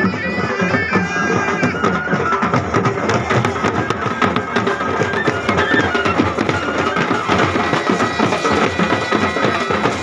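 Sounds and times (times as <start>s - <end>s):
bagpipes playing melody: 0.0s - 10.0s
marching drums beating: 0.0s - 10.0s.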